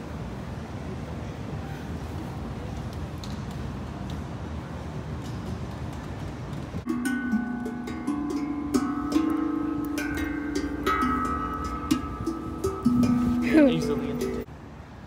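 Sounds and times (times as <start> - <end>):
steady background noise: 0.0 - 15.0
steel drums struck by hand: 6.9 - 14.5.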